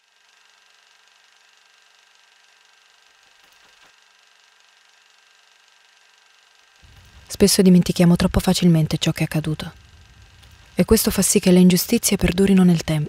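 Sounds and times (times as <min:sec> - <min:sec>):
constant hum: 0:06.8 - 0:13.0.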